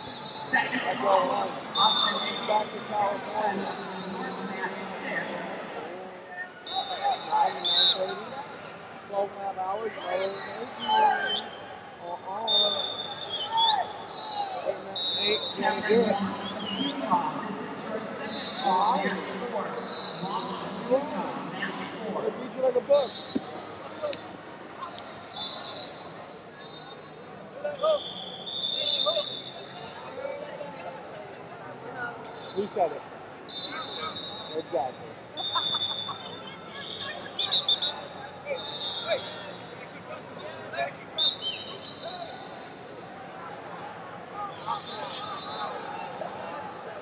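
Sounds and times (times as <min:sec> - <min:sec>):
short whistle blasts: 0:06.6 - 0:08.0, 0:25.3 - 0:27.2, 0:27.8 - 0:29.7, 0:33.5 - 0:34.6, 0:36.8 - 0:39.6
high whistle tones: 0:06.7 - 0:08.1, 0:25.3 - 0:29.8, 0:33.5 - 0:34.7, 0:36.8 - 0:39.7.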